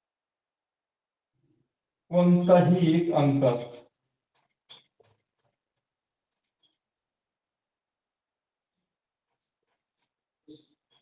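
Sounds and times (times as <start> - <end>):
marker squeaking on whiteboard: 3.8 - 7.1, 8.7 - 11.0.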